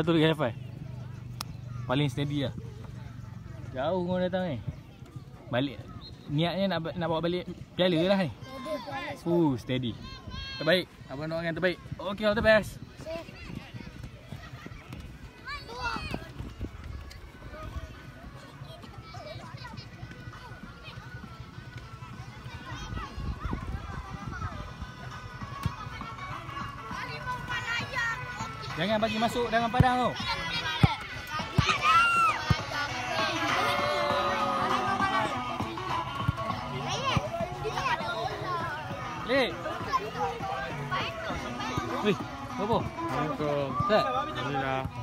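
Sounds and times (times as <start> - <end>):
children calling and chattering: 0.0 - 45.0
background music: 24.0 - 45.0
distant voices calling out: 30.1 - 44.5.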